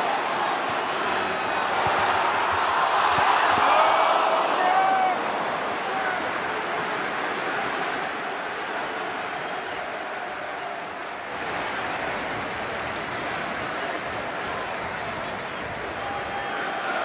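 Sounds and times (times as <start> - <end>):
stadium crowd noise: 0.0 - 17.0.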